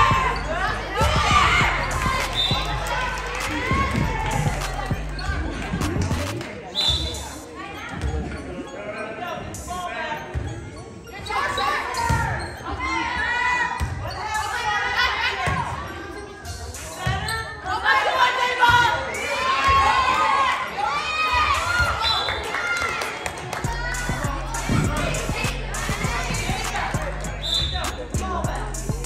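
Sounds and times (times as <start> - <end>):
girls shouting and cheering: 0.0 - 6.2, 17.6 - 29.0.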